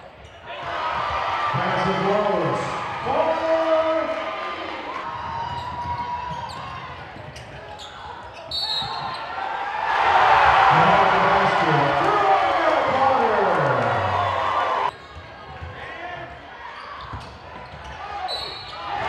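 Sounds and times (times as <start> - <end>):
crowd noise: 0.0 - 19.0
shoe squeaks: 5.4 - 9.4, 16.8 - 18.9.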